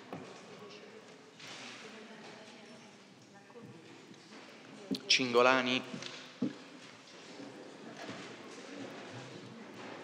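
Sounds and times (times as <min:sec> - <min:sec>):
faint background murmur: 0:00.0 - 0:10.0.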